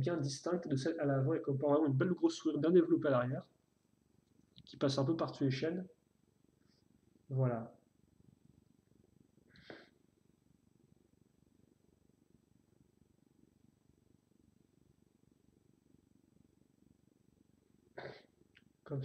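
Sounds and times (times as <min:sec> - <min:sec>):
soft hiss: 0:00.0 - 0:19.0.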